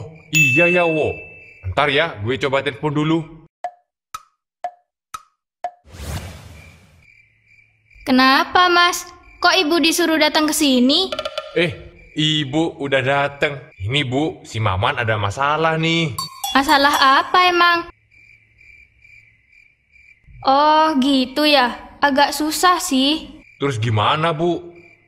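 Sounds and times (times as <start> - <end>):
crickets chirping: 0.0 - 3.0, 6.0 - 25.0.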